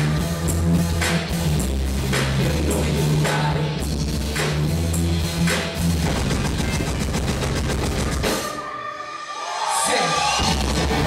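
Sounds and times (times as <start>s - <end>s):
live rock band playing: 0.0s - 8.9s
fast repeated drum hits: 5.9s - 8.5s.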